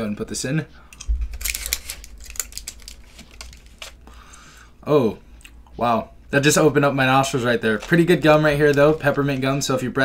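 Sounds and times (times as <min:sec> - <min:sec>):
blister pack clicks and crinkles: 0:00.9 - 0:04.0.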